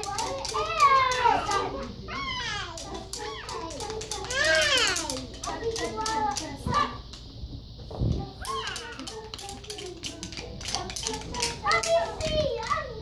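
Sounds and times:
wooden rhythm sticks tapping: 0.0s - 1.7s, 2.6s - 7.2s, 8.4s - 12.8s
young children chattering: 0.0s - 7.1s
children's song playing: 0.0s - 13.0s.

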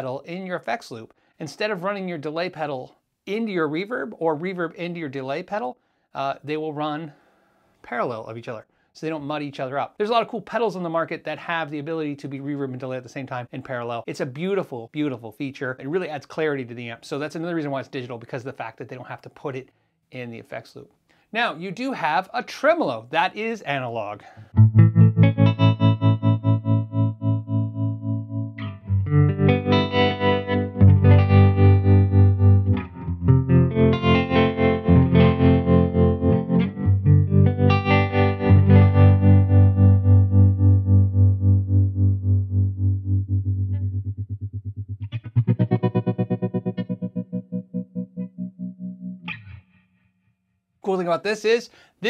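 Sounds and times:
electric guitar chords with tremolo: 24.6s - 50.0s.

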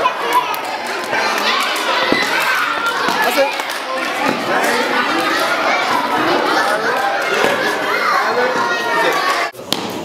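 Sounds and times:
children talking and calling out: 0.0s - 9.6s.

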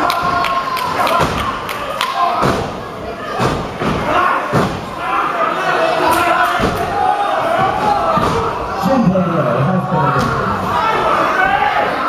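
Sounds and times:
heavy thuds of wrestlers slamming: 2.4s - 5.1s, 6.4s - 8.7s
voices shouting: 10.2s - 12.0s.

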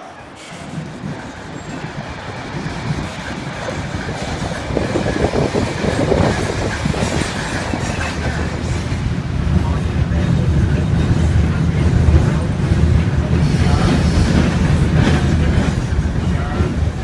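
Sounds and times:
streetcar wheels clattering on rails: 0.0s - 17.0s.

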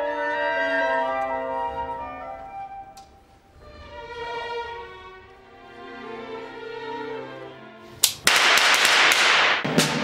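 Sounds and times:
loud sharp crack with hissing wash: 8.0s - 10.0s
snare drum strokes: 8.0s - 10.0s.

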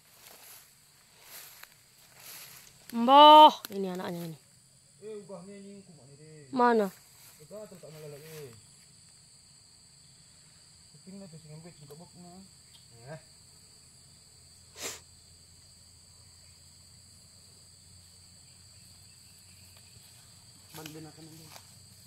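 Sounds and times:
insects chirring: 0.0s - 22.0s.

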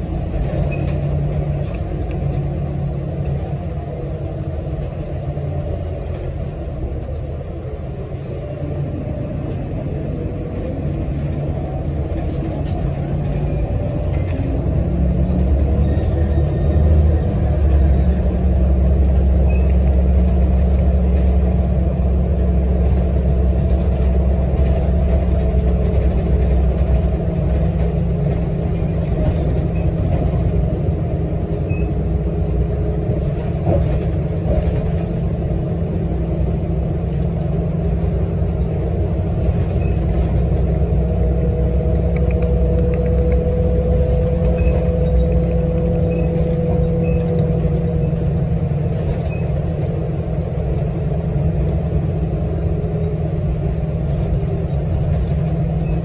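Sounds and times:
bus rumble: 0.0s - 56.0s
thin drawn-out squeal: 13.1s - 16.7s.

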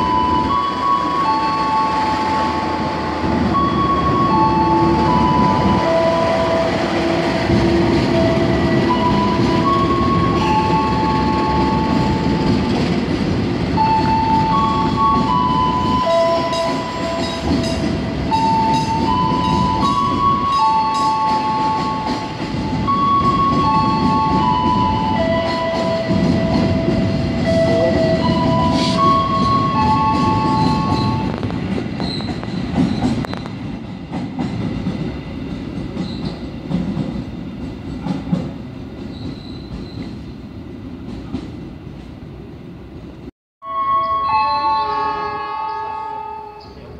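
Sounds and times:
train wheels rumbling on rail: 0.0s - 43.3s
held high tones: 27.5s - 31.3s.

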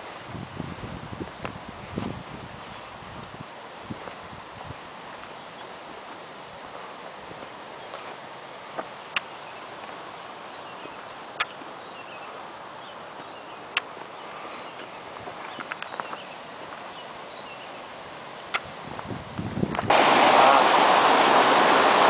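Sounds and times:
steady outdoor hiss: 0.0s - 22.0s.

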